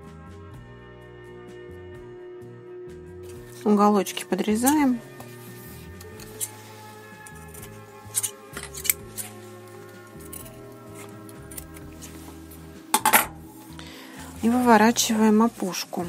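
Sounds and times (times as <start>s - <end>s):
background music: 0.0s - 16.0s
scissors snipping: 7.3s - 12.0s.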